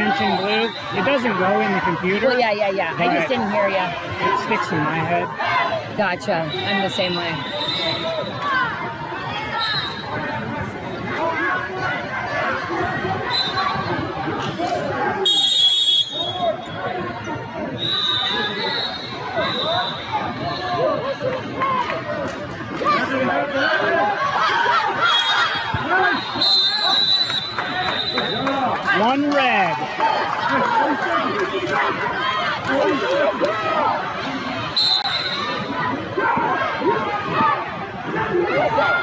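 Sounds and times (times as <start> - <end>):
crowd talking and calling out: 0.0 - 39.0.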